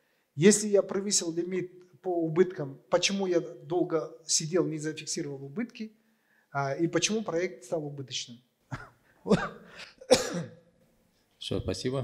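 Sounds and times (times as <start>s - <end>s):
man clearing his throat: 8.7s - 10.7s.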